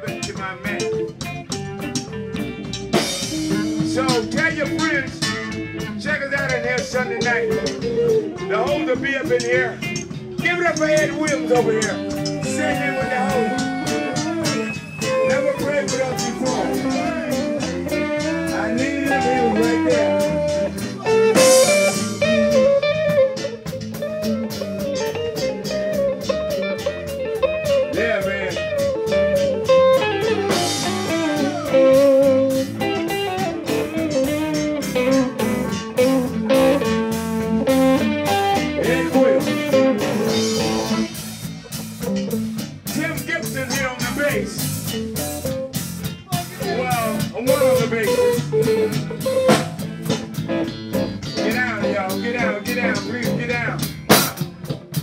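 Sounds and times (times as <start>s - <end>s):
drum kit beat: 0.0s - 55.0s
electric bass: 0.0s - 55.0s
electric guitar lead bending notes: 0.0s - 55.0s.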